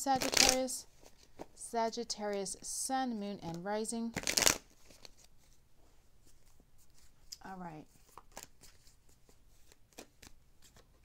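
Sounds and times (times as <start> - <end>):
cards shuffling: 0.2 - 1.6, 4.1 - 5.6, 7.9 - 11.0
soft card handling: 4.2 - 11.0.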